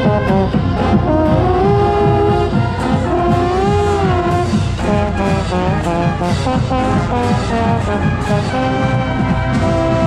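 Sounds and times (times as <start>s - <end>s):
drums: 0.0s - 10.0s
marching band playing: 0.0s - 10.0s
trombone: 0.0s - 10.0s.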